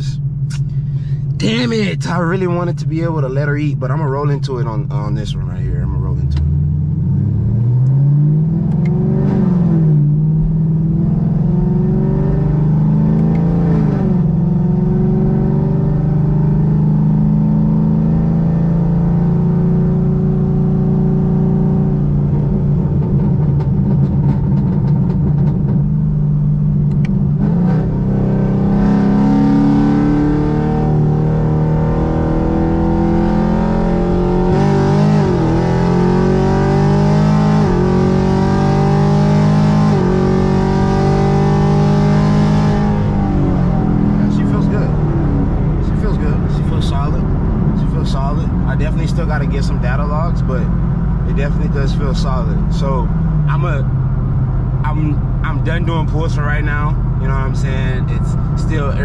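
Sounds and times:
car engine accelerating through gears: 0:05.5 - 0:59.0.

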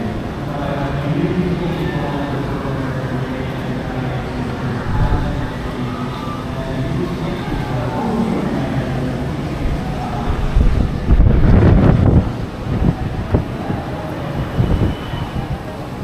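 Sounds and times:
low rumble of road traffic: 0:00.0 - 0:16.0
wind buffeting microphone: 0:04.4 - 0:16.0.

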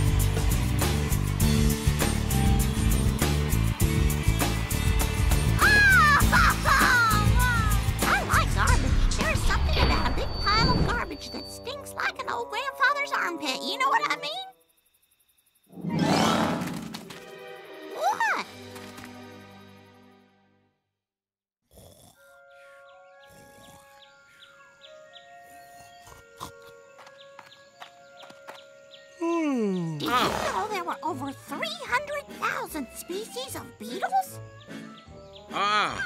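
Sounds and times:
drums: 0:00.0 - 0:11.2.

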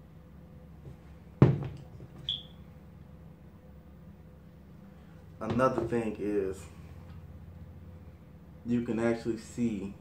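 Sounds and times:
sneaker thumping down: 0:00.8 - 0:02.4, 0:05.4 - 0:06.0
high-pitched chirp: 0:02.2 - 0:02.6.

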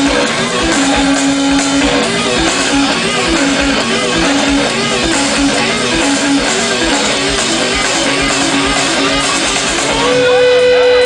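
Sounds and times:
rock band playing: 0:00.0 - 0:11.0.

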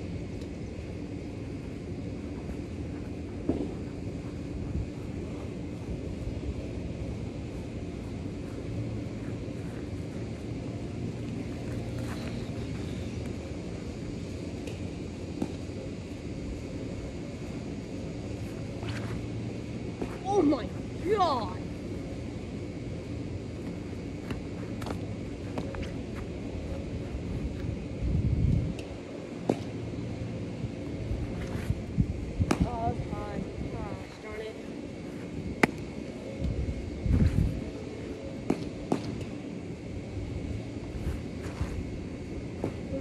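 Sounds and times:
wind buffeting microphone: 0:27.4 - 0:28.8.

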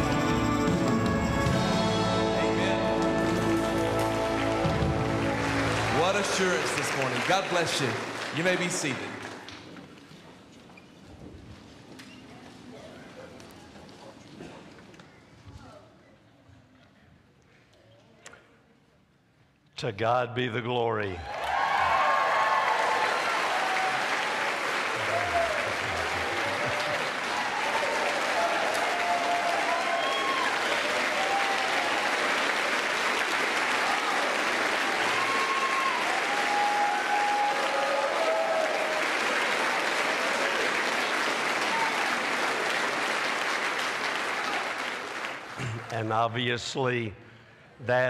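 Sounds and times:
congregation applauding: 0:00.0 - 0:10.1, 0:21.2 - 0:46.5.

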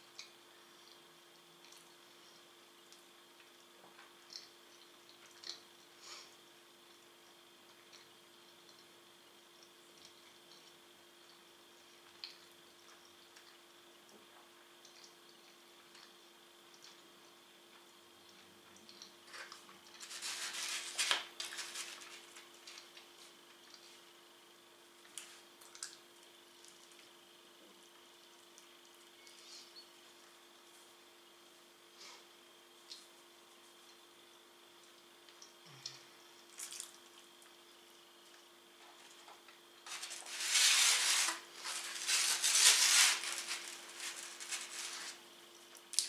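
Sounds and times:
faint chewing and mouth sounds: 0:00.0 - 0:20.0, 0:22.1 - 0:39.8
low steady room hum: 0:00.0 - 0:46.0
rustling scrape of cardboard box: 0:20.0 - 0:22.1, 0:39.9 - 0:45.2.

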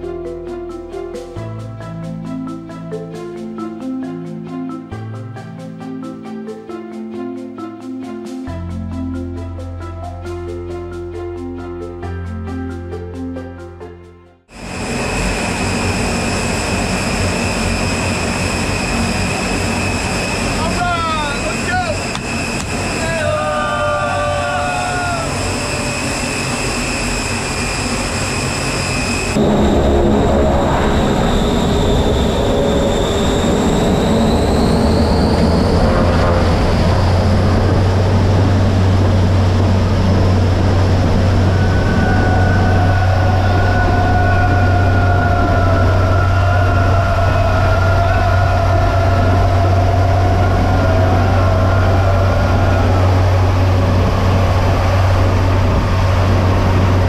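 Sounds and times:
aircraft engine whine rising: 0:14.4 - 0:57.0
aircraft engine drone in cabin: 0:14.5 - 0:57.0.

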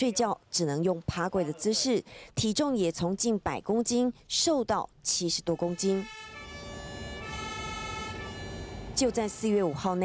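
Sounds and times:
ambulance siren: 0:05.6 - 0:10.0.

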